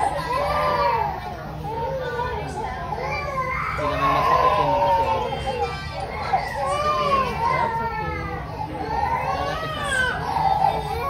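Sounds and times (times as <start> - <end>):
children's voices: 0.0 - 11.0
toddler crying: 0.0 - 11.0.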